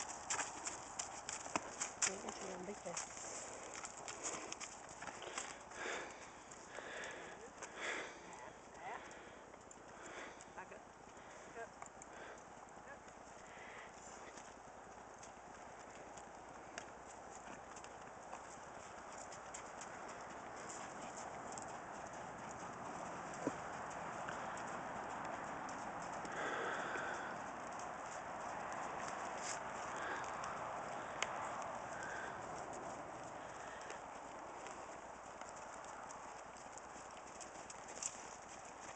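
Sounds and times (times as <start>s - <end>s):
hoofbeats on gravel: 0.0s - 38.9s.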